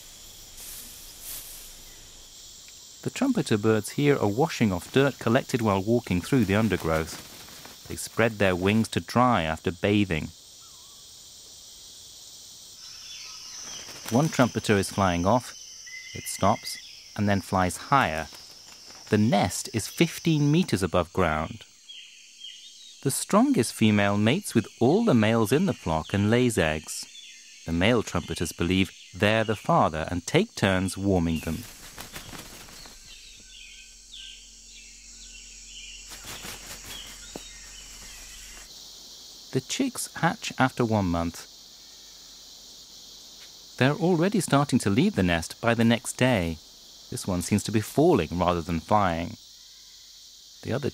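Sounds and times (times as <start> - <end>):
high-pitched insect drone: 0.0 - 50.9
faint bird calls: 10.6 - 11.1, 12.8 - 20.5, 31.0 - 38.7.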